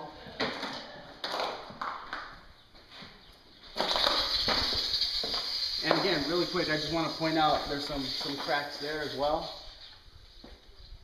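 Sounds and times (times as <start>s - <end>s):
footsteps crunching on debris: 2.7s - 8.7s.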